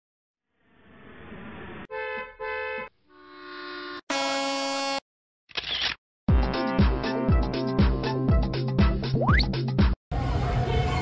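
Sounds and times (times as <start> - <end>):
loud steady horn blast: 1.9 - 5.0
vehicle horn honking: 1.9 - 5.0.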